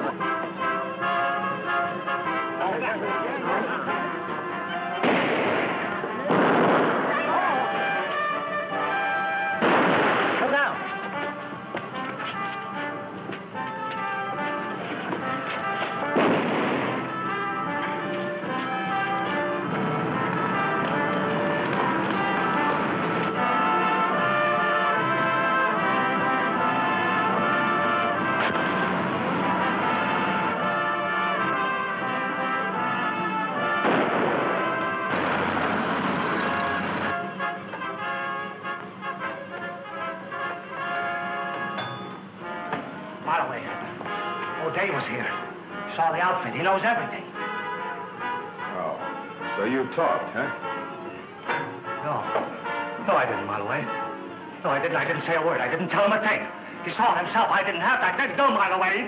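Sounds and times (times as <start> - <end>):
dramatic orchestral music with brass: 0.0 - 59.0
loud noisy bursts: 5.0 - 8.7, 16.0 - 18.0, 18.8 - 37.6.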